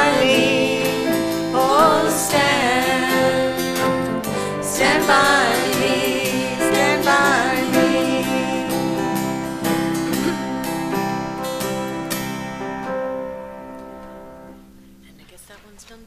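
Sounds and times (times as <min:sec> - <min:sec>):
acoustic guitar strumming: 0:00.0 - 0:14.9.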